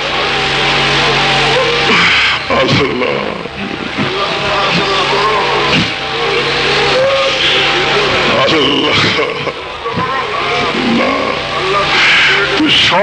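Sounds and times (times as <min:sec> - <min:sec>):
loud hissing noise: 0:00.0 - 0:13.0
man speaking over loudspeaker: 0:02.5 - 0:13.0.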